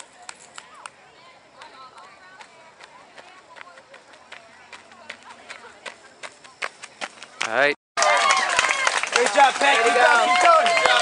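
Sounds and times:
loud shout: 0:08.0 - 0:11.0.

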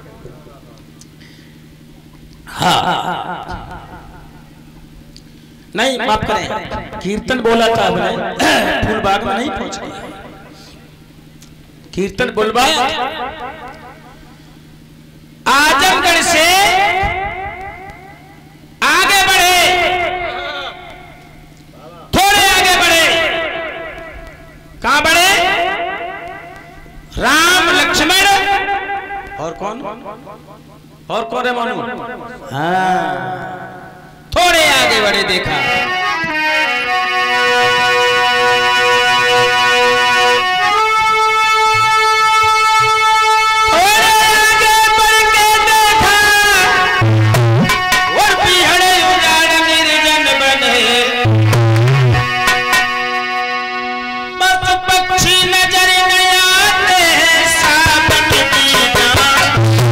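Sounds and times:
man speaking through loudspeaker: 0:00.0 - 0:00.9, 0:05.8 - 0:10.9, 0:11.9 - 0:13.3, 0:15.5 - 0:17.3, 0:18.8 - 0:20.9, 0:21.8 - 0:23.8, 0:24.8 - 0:26.0, 0:27.2 - 0:30.4, 0:31.1 - 0:36.3, 0:43.5 - 0:47.0, 0:48.0 - 0:51.3, 0:54.4 - 0:59.6
faint low hum: 0:00.0 - 0:36.0
keyboard holding a note: 0:05.9 - 0:11.2, 0:12.4 - 0:14.5, 0:15.5 - 0:59.9
person singing: 0:07.4 - 0:10.9, 0:31.7 - 0:34.0.

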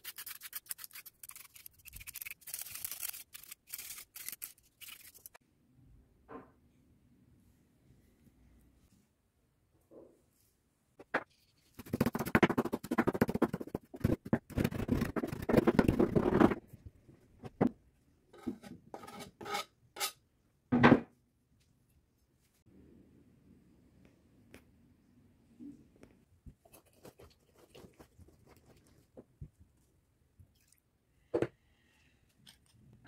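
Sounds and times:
knife scraping cutting board: 0:18.4 - 0:20.2.

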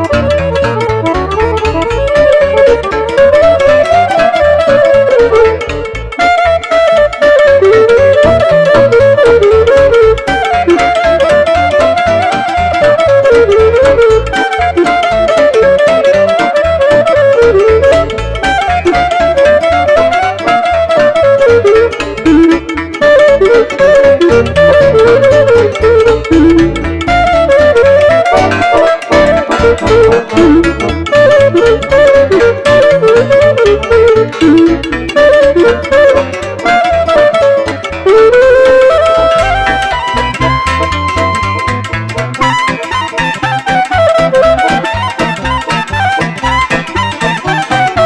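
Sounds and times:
cimbalom accordion and keyboard: 0:00.0 - 0:48.0
clarinet melody: 0:00.0 - 0:48.0.

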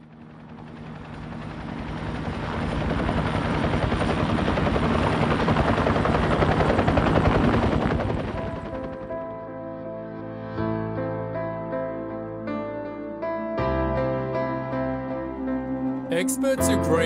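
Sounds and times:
helicopter rotor chop: 0:00.0 - 0:09.3
soft music: 0:08.2 - 0:17.0.

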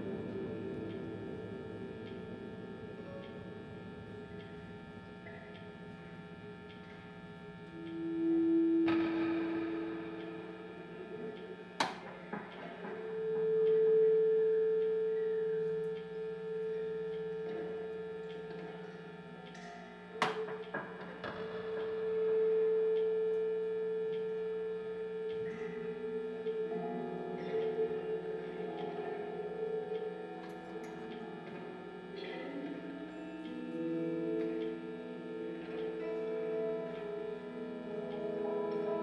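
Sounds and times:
constant low hum: 0:00.0 - 0:39.0
electric guitar drone tones: 0:00.0 - 0:39.0.

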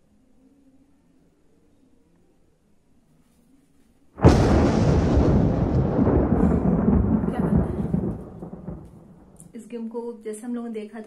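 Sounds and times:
loud thunder rumbling: 0:04.2 - 0:09.5.

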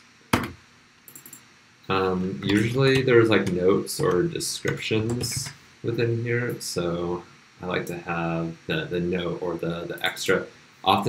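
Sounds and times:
sharp click: 0:00.4 - 0:01.4.

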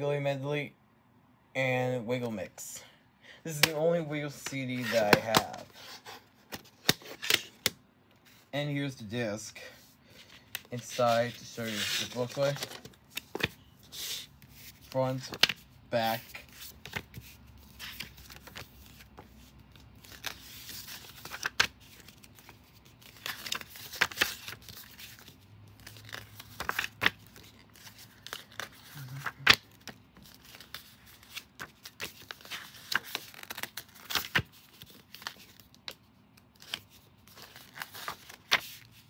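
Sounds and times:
paper pages rustling: 0:03.6 - 0:07.6, 0:10.1 - 0:39.0.

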